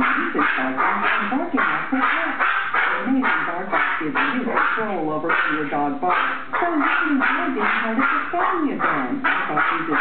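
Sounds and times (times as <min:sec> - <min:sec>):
small dog barking excitedly: 0:06.1 - 0:10.0.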